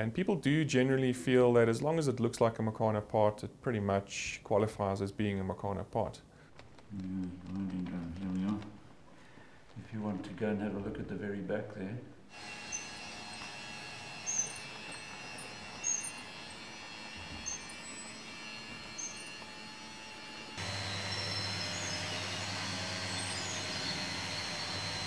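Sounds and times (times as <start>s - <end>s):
model machine mechanical hum: 12.3s - 25.0s
low motor hum: 12.4s - 25.0s.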